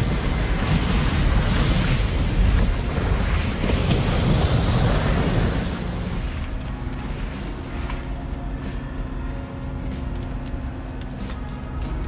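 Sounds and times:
waves crashing: 0:00.0 - 0:09.3
boat engines: 0:00.0 - 0:12.0
steady low rumble: 0:00.0 - 0:12.0
wind: 0:00.0 - 0:12.0.

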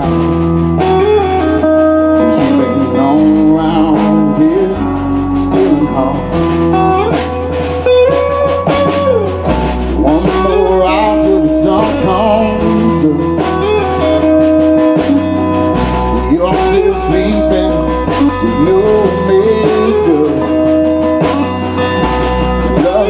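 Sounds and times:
electric guitar: 0:00.0 - 0:23.0
pitch-bending melody line: 0:00.0 - 0:23.0
strummed acoustic guitar: 0:00.0 - 0:23.0
upright bass: 0:00.0 - 0:23.0.

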